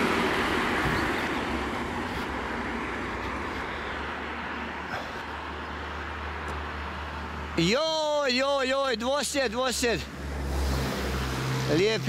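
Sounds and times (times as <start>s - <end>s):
low traffic rumble: 0.0s - 12.0s
vehicle passing: 0.0s - 12.0s.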